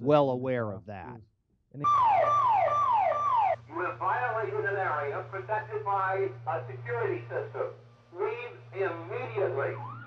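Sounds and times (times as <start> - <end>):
low steady hum: 0.0 - 10.0
alarm siren whooping: 1.8 - 3.7, 9.2 - 10.0.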